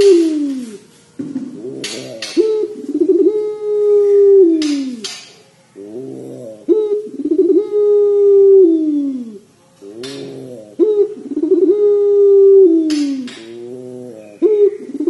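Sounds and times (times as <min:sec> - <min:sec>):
dove cooing: 0:00.0 - 0:15.0.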